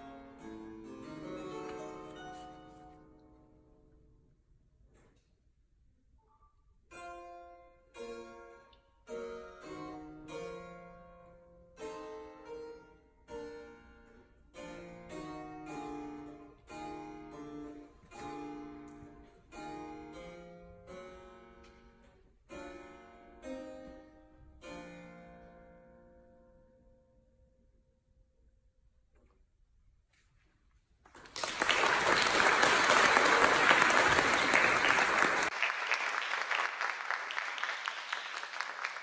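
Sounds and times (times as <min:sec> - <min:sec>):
harpsichord playing: 0:00.0 - 0:03.3, 0:06.9 - 0:26.3.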